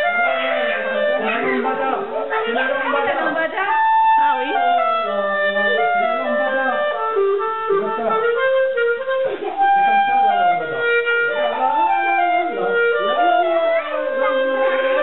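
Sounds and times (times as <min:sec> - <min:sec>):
clarinet melody: 0:00.0 - 0:15.0.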